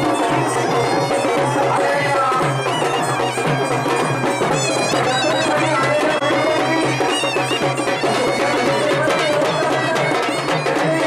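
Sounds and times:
reedy wind instrument melody: 0.0s - 11.0s
steady drum beat: 0.0s - 11.0s.

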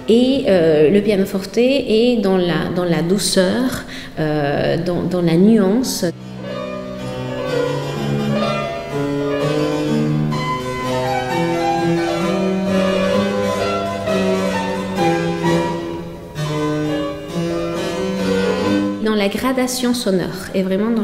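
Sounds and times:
harpsichord and fortepiano duet: 6.1s - 19.8s.

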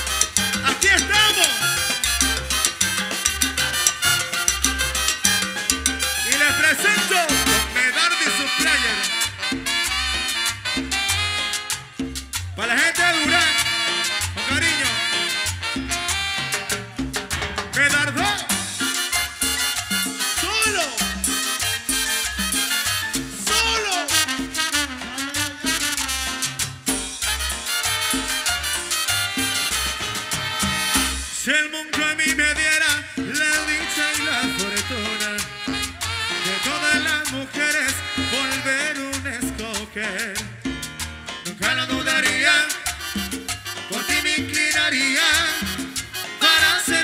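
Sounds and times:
horns: 0.0s - 12.0s, 12.9s - 31.8s, 33.6s - 39.2s, 41.5s - 44.7s, 45.4s - 47.0s
repeating bass line: 0.0s - 31.5s, 32.3s - 47.0s
latin dance orchestra: 0.0s - 47.0s
percussion: 0.0s - 47.0s.

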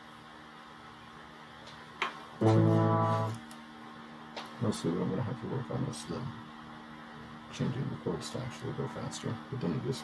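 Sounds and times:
faint steady hum: 0.0s - 10.0s
electric guitar chord strummed: 2.4s - 3.4s.

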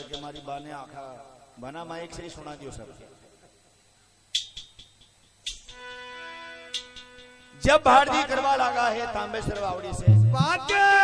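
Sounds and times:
small metal percussion strikes: 4.3s - 6.1s.

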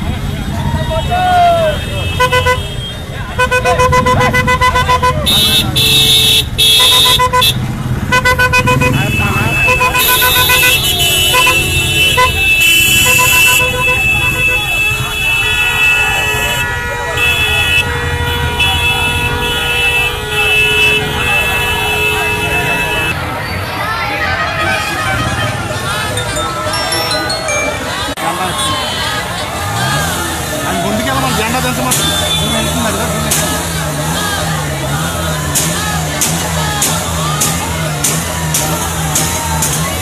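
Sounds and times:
crowd shouting: 0.0s - 7.9s, 8.7s - 40.0s
vehicle horns honking: 0.0s - 40.0s.

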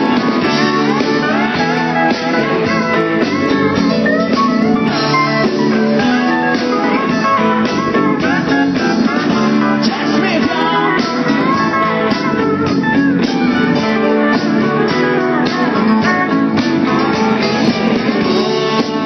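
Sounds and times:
country band playing: 0.0s - 19.0s
guitar: 0.0s - 19.0s.

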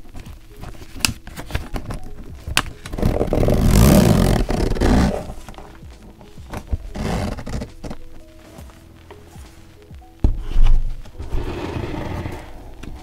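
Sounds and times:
faint lo-fi music: 0.0s - 13.0s
rough scraping rub on fabric case: 6.9s - 7.9s, 10.6s - 12.7s.

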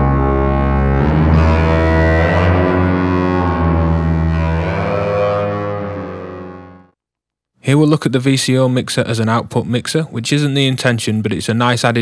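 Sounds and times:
synthesizer drone pad: 0.0s - 7.0s.

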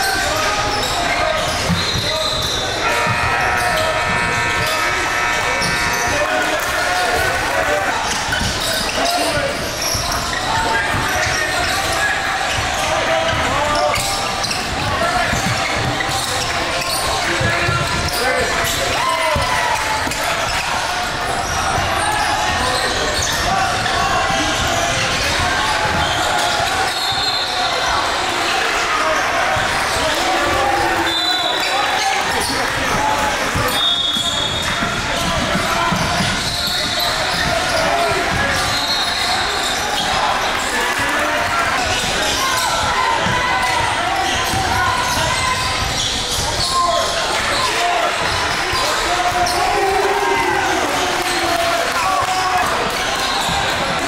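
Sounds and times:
indistinct shouting and chatter: 0.0s - 54.0s.

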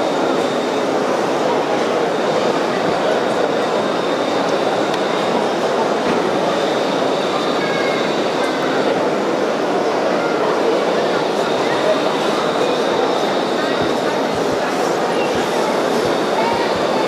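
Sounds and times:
murmur of many voices: 0.0s - 17.0s.

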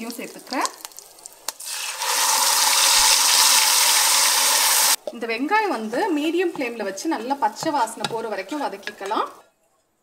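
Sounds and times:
onion paste sizzling in oil: 0.0s - 5.0s.

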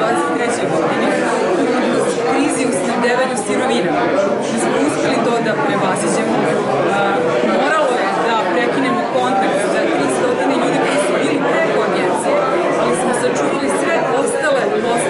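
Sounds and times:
crowd chatter: 0.0s - 15.0s
woman talking: 4.5s - 15.0s.

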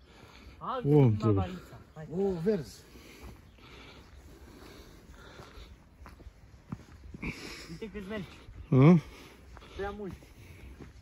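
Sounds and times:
person breathing hard: 0.0s - 0.6s, 2.8s - 6.2s, 6.9s - 11.0s
soft footsteps: 0.8s - 11.0s.

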